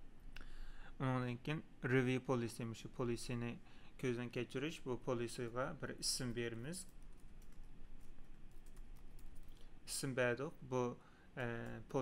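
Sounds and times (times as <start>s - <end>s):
computer keyboard typing: 6.8s - 9.6s, 11.4s - 12.0s.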